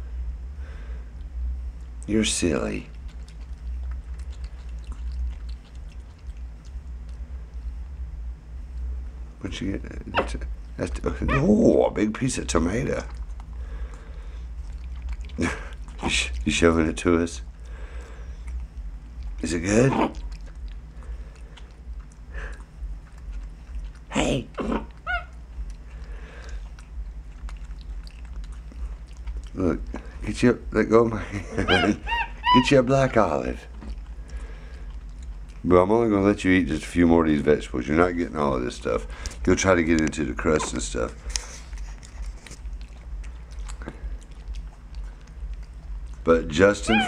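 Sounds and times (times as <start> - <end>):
low steady hum: 0.0 - 47.0
monkey vocal sounds: 9.8 - 17.4, 18.0 - 36.3, 38.6 - 47.0
high-pitched monkey squeak: 10.1 - 10.4, 11.3 - 11.5, 24.7 - 25.4, 31.5 - 33.2, 46.8 - 47.0
eating and handling clicks: 12.3 - 30.3, 39.1 - 47.0.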